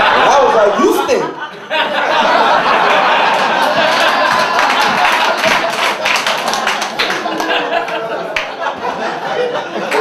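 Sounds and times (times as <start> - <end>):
audience laughing: 0.0 - 10.0
audience clapping: 2.8 - 10.0.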